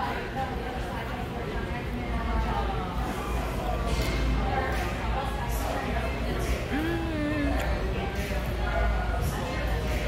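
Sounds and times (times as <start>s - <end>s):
indistinct background voices: 3.8s - 8.8s.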